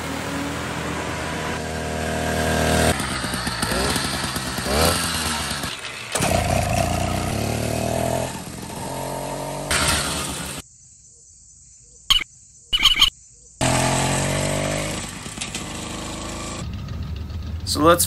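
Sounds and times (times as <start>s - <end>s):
two-stroke bicycle engine passing: 0.0s - 10.6s, 13.6s - 18.0s.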